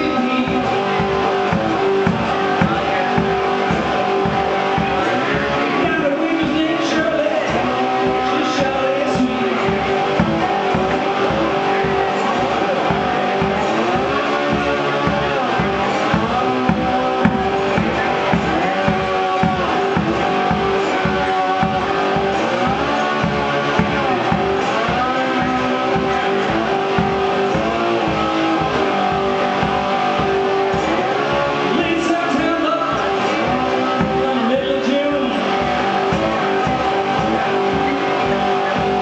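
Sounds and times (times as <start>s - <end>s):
low thumping beat: 0.0s - 39.0s
slide guitar blues: 0.0s - 39.0s.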